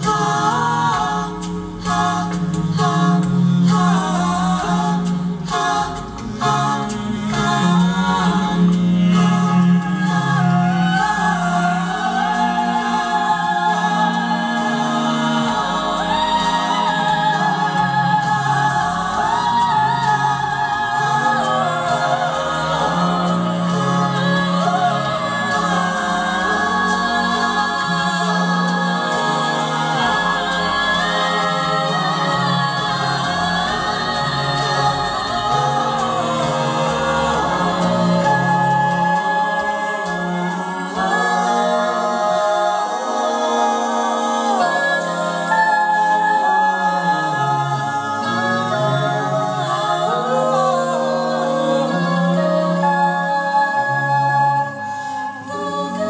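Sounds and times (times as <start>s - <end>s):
a cappella ensemble singing: 0.0s - 56.0s.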